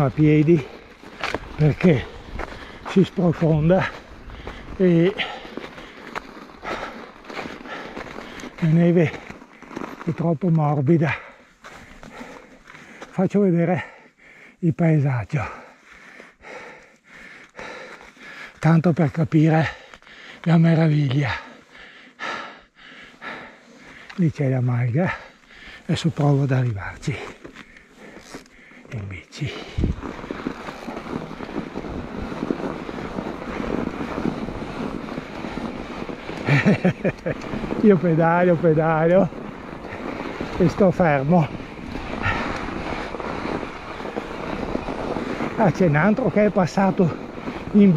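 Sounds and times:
rider's voice: 0:00.0 - 0:00.8, 0:01.6 - 0:02.2, 0:02.9 - 0:04.0, 0:04.8 - 0:05.4, 0:08.6 - 0:09.2, 0:10.0 - 0:11.3, 0:13.1 - 0:14.0, 0:14.6 - 0:15.7, 0:18.6 - 0:19.8, 0:20.4 - 0:21.5, 0:24.2 - 0:25.3, 0:25.9 - 0:27.4, 0:28.9 - 0:29.9, 0:37.8 - 0:39.3, 0:40.6 - 0:41.6, 0:45.6 - 0:47.9
bike tyres crunching through snow: 0:00.0 - 0:47.9
man breathing heavily: 0:00.6 - 0:02.9, 0:03.8 - 0:08.6, 0:11.1 - 0:14.6, 0:15.4 - 0:18.6, 0:19.5 - 0:20.5, 0:21.2 - 0:24.2, 0:24.9 - 0:25.9, 0:27.1 - 0:36.6, 0:41.6 - 0:45.6.

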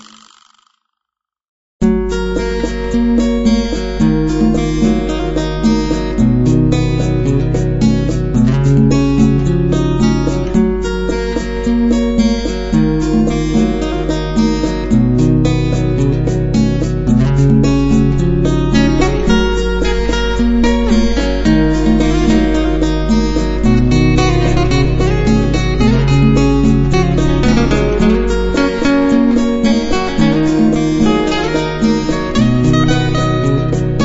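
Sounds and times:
fingerstyle acoustic guitar: 0:01.8 - 0:34.0
steady low hum: 0:12.8 - 0:34.0.

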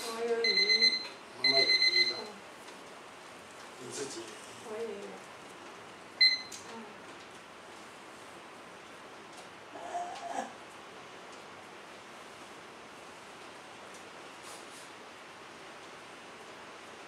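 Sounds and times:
whimper-like voice sound: 0:09.7 - 0:10.6.

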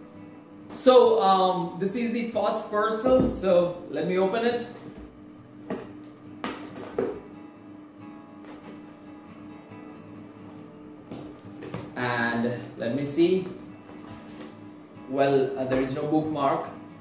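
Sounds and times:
soft guitar music: 0:00.0 - 0:17.0.

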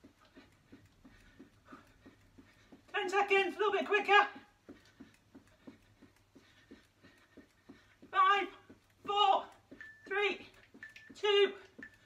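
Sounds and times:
footsteps jogging on carpet: 0:00.0 - 0:12.0.

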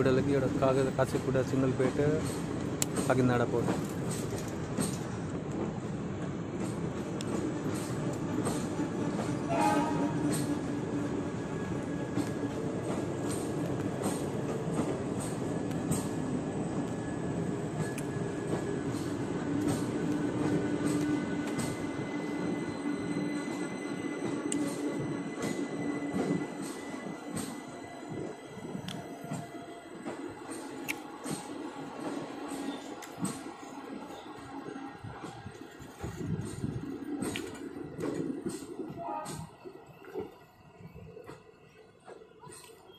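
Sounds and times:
train wheels rumbling on rails: 0:00.0 - 0:42.9
wheels clicking over rail joints: 0:01.8 - 0:05.7.

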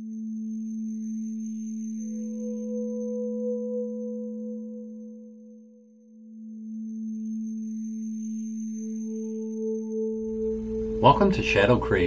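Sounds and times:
low droning tone: 0:00.0 - 0:12.0.

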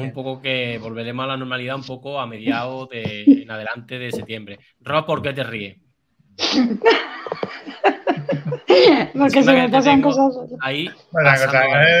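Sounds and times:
woman giggling: 0:06.4 - 0:09.2.

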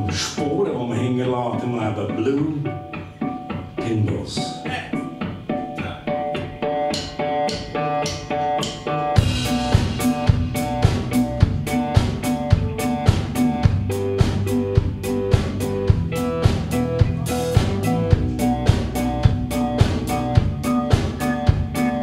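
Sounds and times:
drum kit steady beat: 0:00.0 - 0:22.0
rock band playing: 0:00.0 - 0:22.0.

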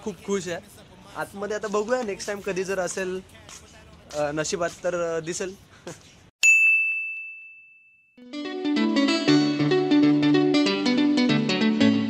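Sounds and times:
bright high ding: 0:06.4 - 0:08.2.

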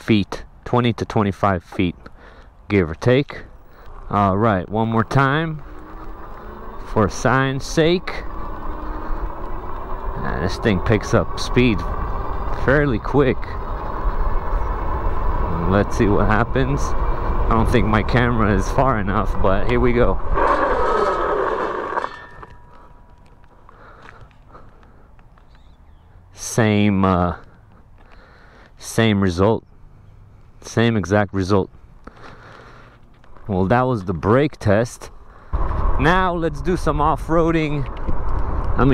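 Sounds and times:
fat tyres rolling on pavement: 0:00.4 - 0:29.2, 0:30.2 - 0:38.9
wind rumbling on microphone: 0:03.5 - 0:23.6, 0:35.3 - 0:38.9.

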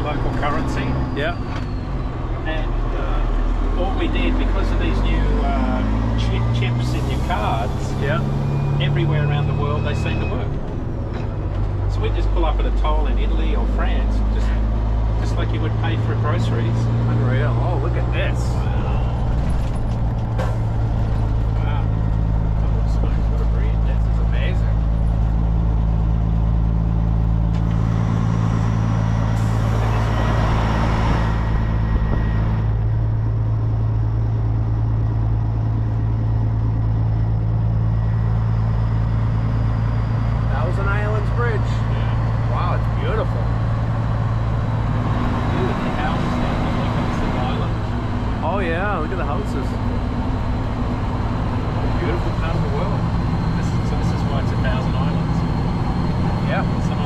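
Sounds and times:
diesel truck engine droning: 0:00.0 - 0:57.0
road and tyre noise: 0:00.0 - 0:57.0.

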